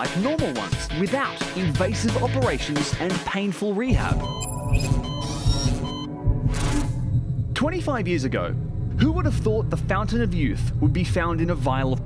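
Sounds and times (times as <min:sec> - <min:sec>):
electronic music with pulsing beat: 0:00.0 - 0:07.7
high electronic tones: 0:04.0 - 0:07.3.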